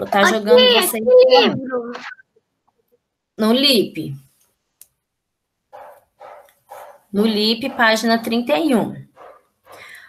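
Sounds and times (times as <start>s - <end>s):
person speaking: 0.0s - 2.3s, 6.8s - 9.2s
dog barking: 5.7s - 8.0s, 9.2s - 9.9s.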